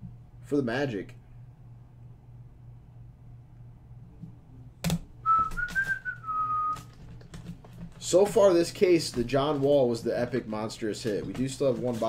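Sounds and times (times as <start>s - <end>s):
person whistling: 5.2s - 6.9s.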